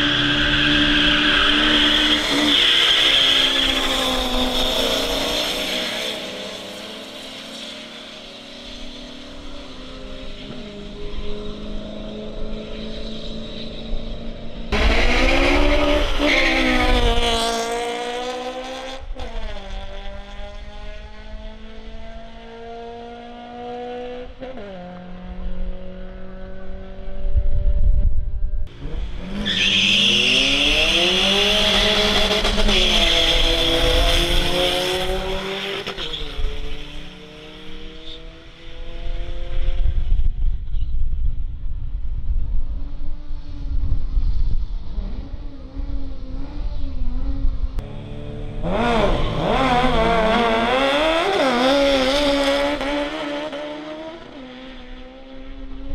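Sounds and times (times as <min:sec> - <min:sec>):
racing car engines revving: 0:00.0 - 0:27.3, 0:28.7 - 0:40.1, 0:44.8 - 0:55.9.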